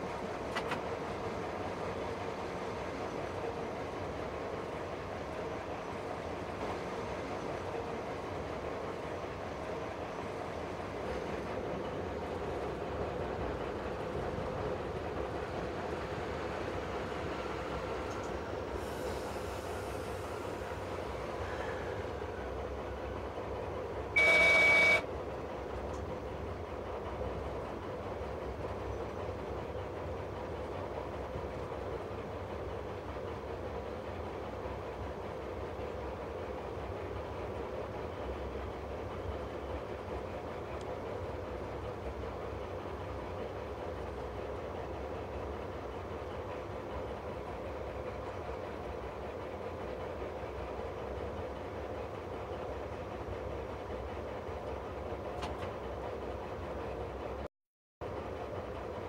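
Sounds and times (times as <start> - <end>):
diesel locomotive engine droning: 0.0 - 59.0.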